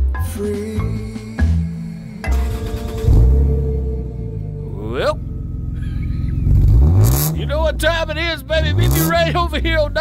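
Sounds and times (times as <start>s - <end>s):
vehicle engine rumbling: 0.9s - 10.0s
low pitched sound: 1.4s - 10.0s
rising sweep: 2.2s - 7.4s.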